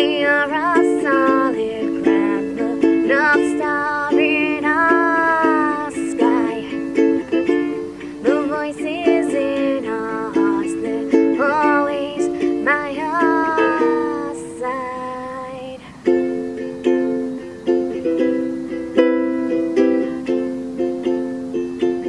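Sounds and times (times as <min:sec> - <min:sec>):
person singing: 0:00.0 - 0:22.0
ukulele strumming chords: 0:00.0 - 0:22.0.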